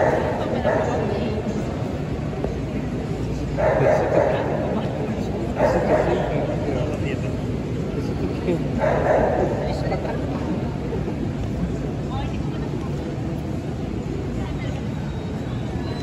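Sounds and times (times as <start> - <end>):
crowd murmur in a large hall: 0.0 - 16.0.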